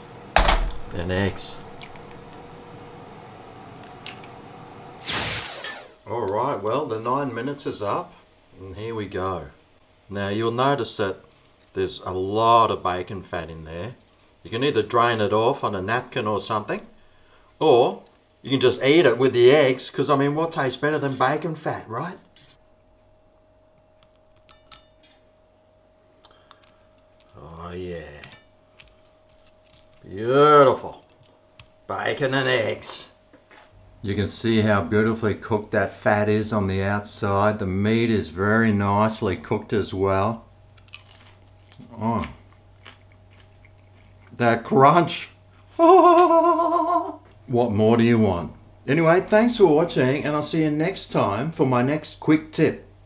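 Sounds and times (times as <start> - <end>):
low background hum: 0.0 - 53.0
short loud hiss: 5.0 - 6.0.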